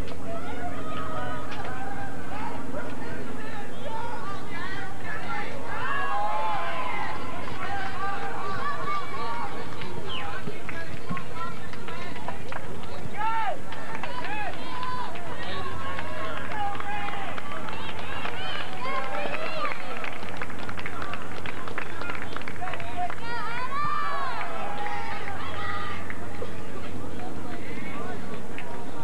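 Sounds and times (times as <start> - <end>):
high voices shouting: 0.1 - 12.1, 22.9 - 26.2.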